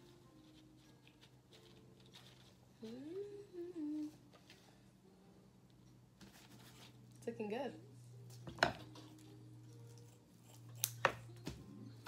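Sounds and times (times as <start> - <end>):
woman humming: 2.8 - 4.3.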